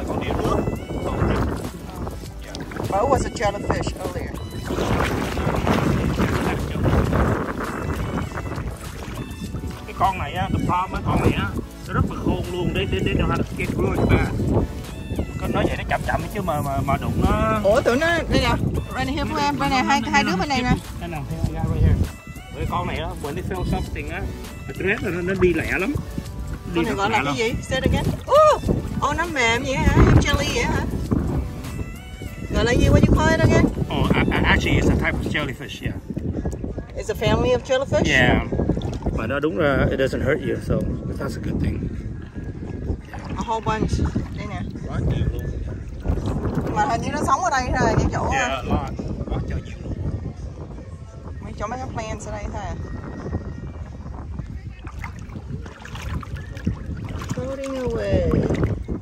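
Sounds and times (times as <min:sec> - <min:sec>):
voices talking: 0:00.0 - 0:31.1, 0:31.8 - 0:36.3, 0:43.0 - 0:50.1, 0:56.4 - 0:58.7
shallow water sloshing: 0:00.0 - 0:33.9, 0:34.5 - 0:39.5, 0:42.0 - 0:48.5, 0:54.3 - 0:59.0
wind on microphone: 0:00.0 - 0:59.0.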